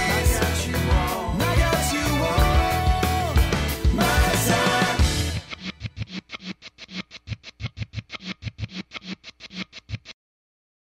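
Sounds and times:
fast pulsing music with thumps: 2.4s - 10.1s.

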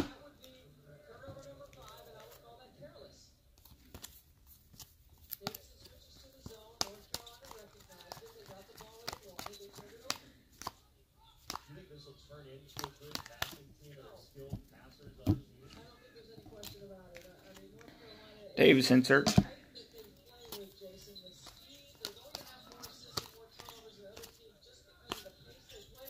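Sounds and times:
cards clicking and sliding: 3.6s - 11.7s, 12.6s - 15.8s, 16.5s - 17.9s, 20.2s - 26.0s.

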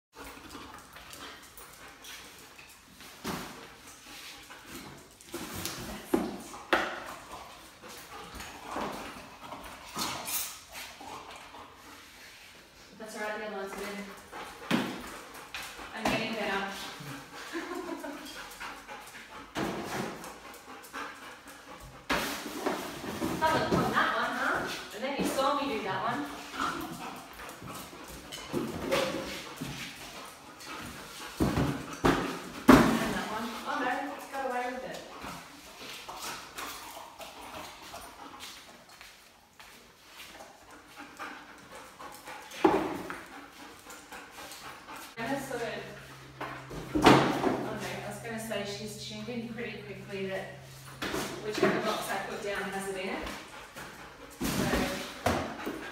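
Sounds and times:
dog bumping cardboard boxes: 30.8s - 34.0s, 54.3s - 55.9s.

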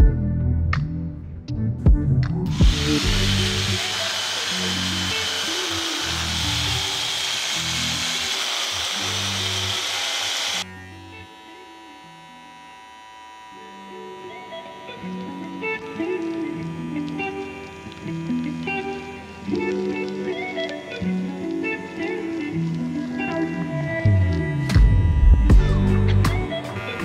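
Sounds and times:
background music: 0.0s - 12.3s, 13.6s - 27.0s
electric rug clippers whirring: 2.5s - 27.0s.

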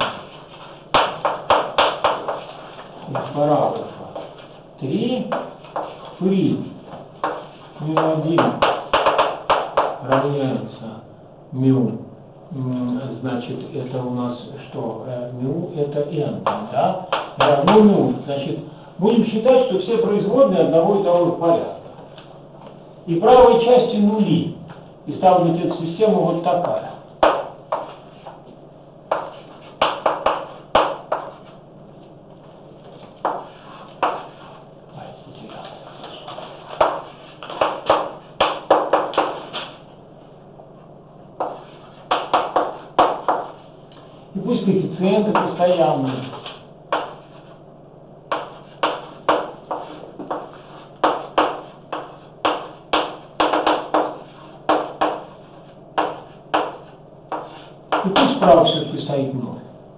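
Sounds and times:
chalk writing on blackboard: 0.0s - 4.6s, 5.3s - 6.2s, 7.2s - 7.8s, 29.1s - 31.5s, 32.9s - 34.6s, 35.9s - 39.8s, 41.4s - 44.1s, 46.0s - 47.6s, 48.3s - 58.0s.

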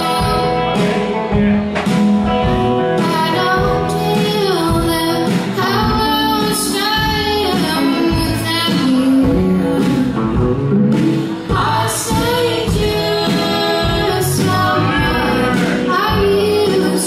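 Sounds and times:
woman singing: 0.0s - 1.1s, 3.0s - 17.0s
live band playing: 0.0s - 17.0s.

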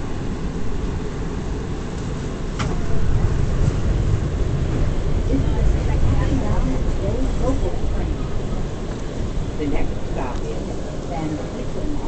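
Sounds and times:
subway car rumbling on rails: 0.0s - 12.0s.

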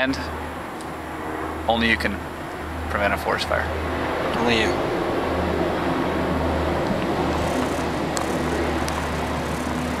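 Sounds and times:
motor humming: 6.8s - 10.0s.

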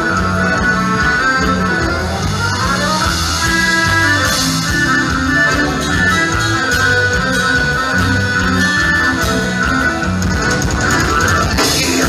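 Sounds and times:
accordion: 0.0s - 12.0s
bass: 0.0s - 12.0s
drums: 0.0s - 12.0s
guitar: 0.0s - 12.0s.

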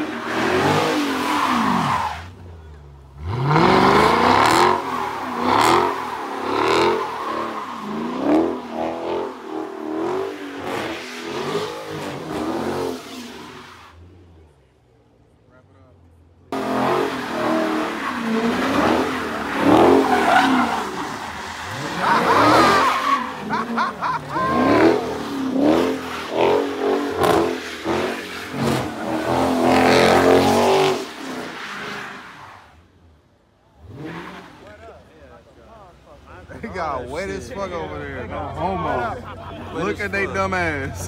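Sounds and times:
tires squealing on wet asphalt: 0.0s - 2.5s, 3.2s - 14.2s, 16.6s - 33.2s, 33.8s - 35.1s
car engine revving: 0.0s - 14.6s, 16.1s - 32.3s, 33.0s - 35.1s.

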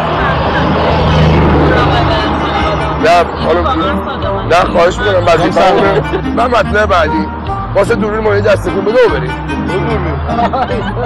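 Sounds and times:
vehicle humming: 0.0s - 11.0s
voices: 0.0s - 11.0s.

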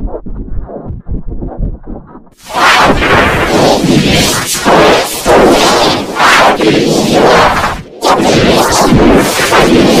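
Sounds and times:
harsh distorted noise blast: 2.4s - 10.0s.

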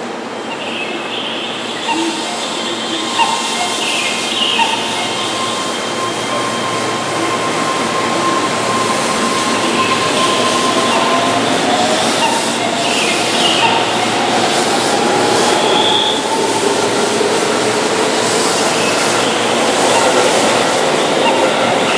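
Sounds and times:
train cars rumbling: 0.0s - 21.9s.

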